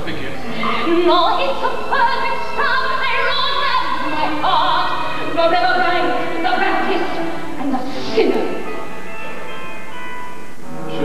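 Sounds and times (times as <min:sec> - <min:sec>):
orchestra playing sustained chords: 0:00.0 - 0:11.0.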